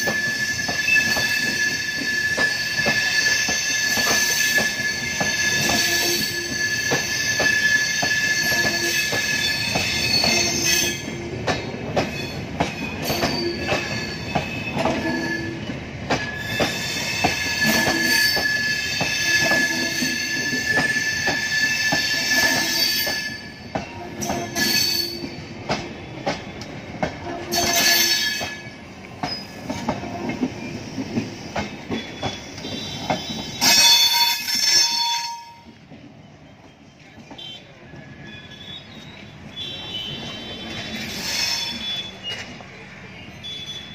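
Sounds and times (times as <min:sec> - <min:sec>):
train wheels squealing on rails: 0:00.0 - 0:43.9.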